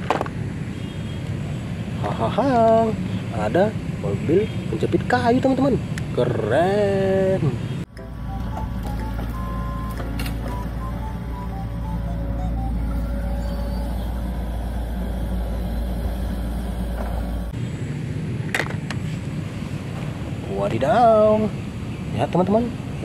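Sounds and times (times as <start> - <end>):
diesel engine rumbling: 0.0 - 23.0.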